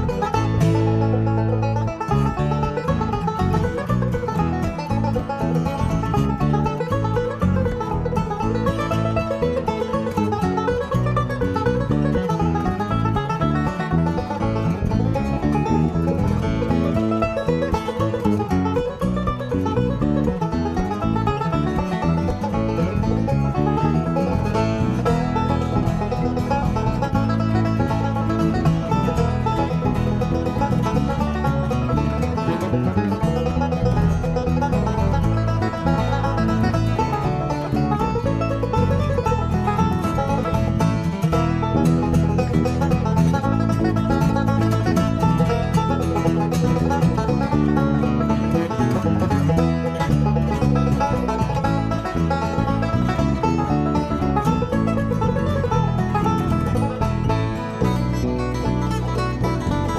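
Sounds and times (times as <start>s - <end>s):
banjo picking: 0.0s - 59.9s
electric bass line: 0.0s - 59.9s
strummed acoustic guitar: 0.0s - 59.9s.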